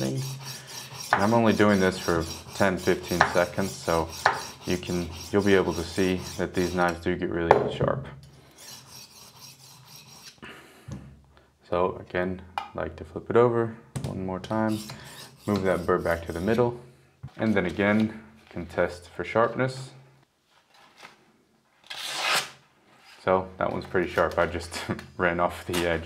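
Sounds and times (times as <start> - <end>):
knife sharpener grinding steel: 0.0 - 7.0, 8.5 - 10.4, 14.7 - 16.6.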